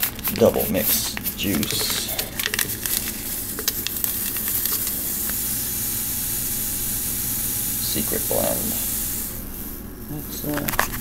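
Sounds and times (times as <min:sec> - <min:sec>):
paper packet crinkling: 0:00.0 - 0:05.4, 0:10.3 - 0:11.0
powder pouring into plastic pitcher: 0:00.0 - 0:06.9.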